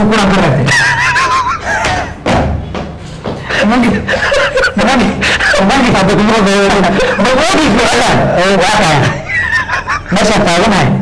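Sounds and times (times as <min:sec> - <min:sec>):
men laughing: 0:00.5 - 0:02.4, 0:03.2 - 0:10.9
men speaking: 0:03.3 - 0:11.0.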